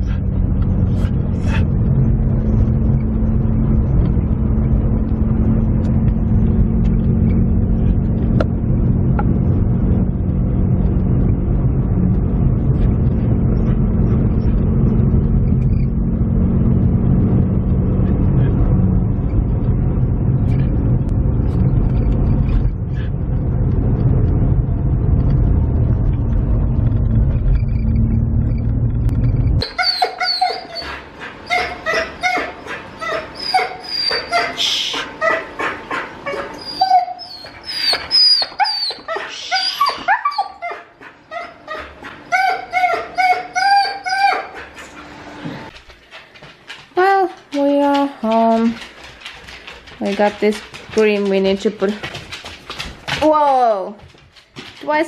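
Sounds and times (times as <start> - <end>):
husky whining and yipping: 29.6 - 45.4.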